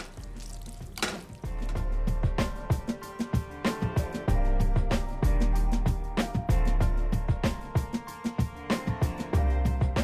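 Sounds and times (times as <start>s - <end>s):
background music with drum beat: 0.0s - 10.0s.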